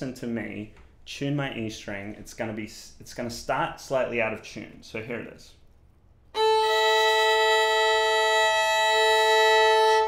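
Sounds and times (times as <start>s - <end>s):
violin bowing a double stop: 6.4s - 10.0s.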